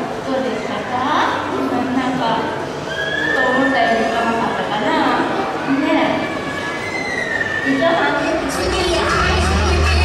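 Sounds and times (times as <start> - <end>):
voices echoing in hall: 0.0 - 10.0
high drawn-out squealing cry: 2.9 - 4.1, 5.7 - 8.2.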